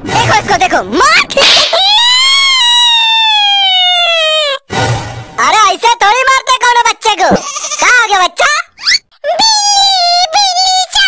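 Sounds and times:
cartoon boy wailing: 0:01.4 - 0:04.6.

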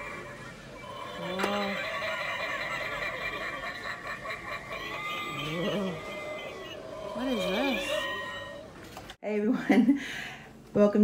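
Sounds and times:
indoor shop hum: 0:00.0 - 0:11.0.

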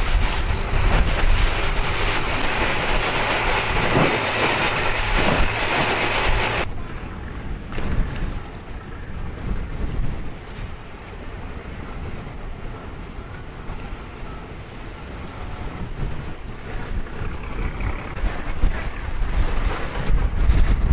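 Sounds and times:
boat engine: 0:00.0 - 0:20.9
choppy river water: 0:00.0 - 0:20.9
wind buffeting microphone: 0:00.0 - 0:20.9.

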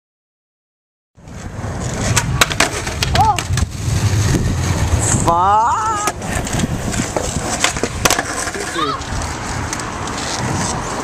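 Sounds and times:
skateboard clacking on ground: 0:01.2 - 0:04.3, 0:05.5 - 0:11.0
skateboard wheels rolling on asphalt: 0:01.2 - 0:11.0.

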